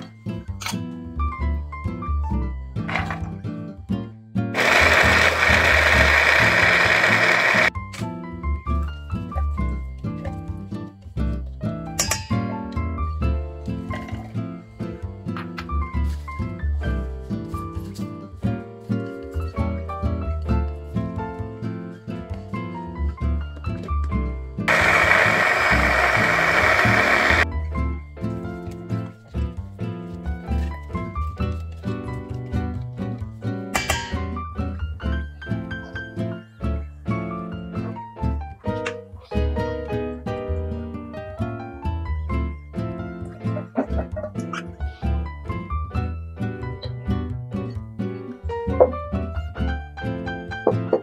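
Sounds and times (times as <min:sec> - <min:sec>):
light plucked background music: 0:00.0 - 0:51.0
electric food chopper running: 0:04.6 - 0:07.8, 0:24.7 - 0:27.4.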